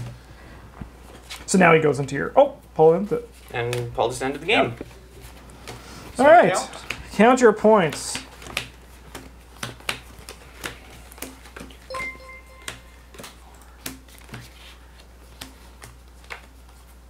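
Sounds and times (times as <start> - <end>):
short electronic chime: 11.9 - 13.2.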